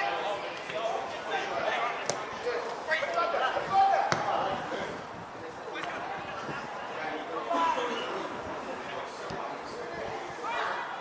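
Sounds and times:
football kick thud: 4.0 - 4.6.

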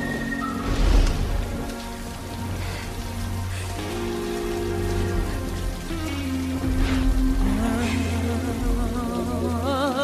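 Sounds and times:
steady rainfall: 0.0 - 10.0.

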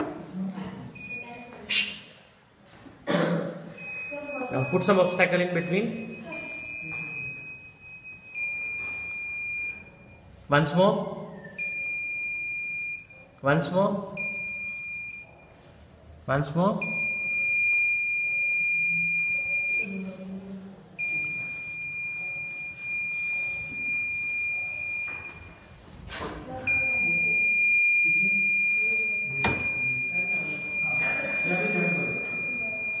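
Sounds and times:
alarm buzzer high-pitched tone: 3.8 - 10.2, 16.8 - 20.1, 26.7 - 33.0.

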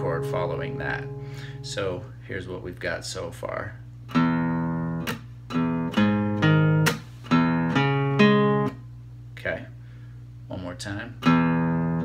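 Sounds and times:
acoustic guitar rock riff: 0.0 - 1.8, 4.1 - 8.8, 11.2 - 12.0
palm-muted guitar strum: 0.0 - 2.0, 4.1 - 8.9, 11.2 - 12.0.

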